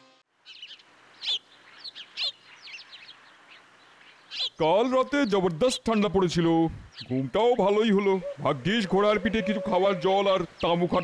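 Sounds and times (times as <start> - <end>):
faint steady hiss: 0.0 - 11.0
birds chirping: 0.3 - 11.0.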